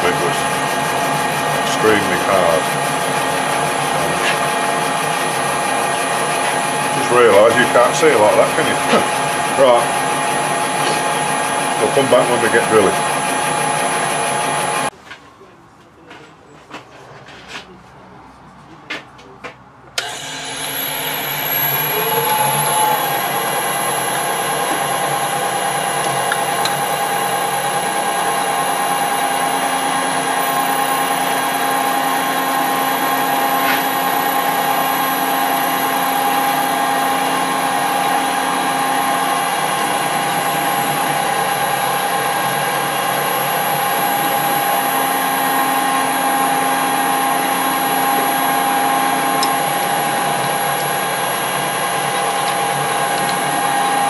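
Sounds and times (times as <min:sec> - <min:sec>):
metal lathe gear whine: 0:00.0 - 0:14.9, 0:20.0 - 0:54.0.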